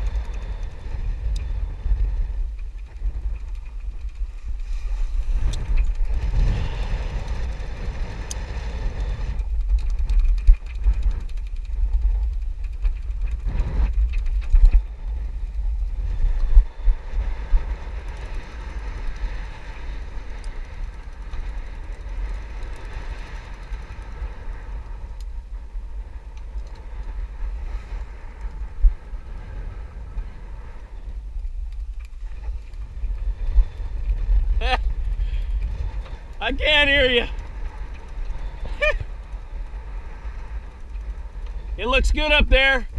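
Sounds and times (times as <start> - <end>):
wind buffeting microphone: 0.0 - 42.9.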